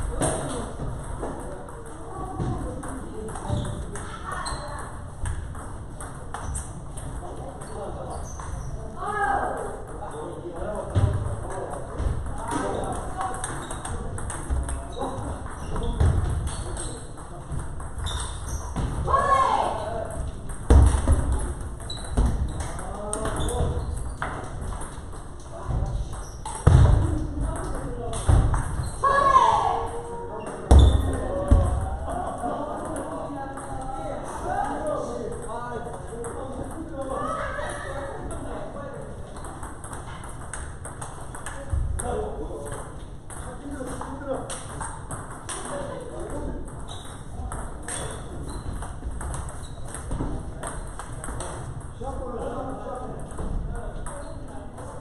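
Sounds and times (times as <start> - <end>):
table tennis balls clicking: 0.0 - 8.7, 9.4 - 19.0, 20.1 - 34.1, 39.2 - 52.0.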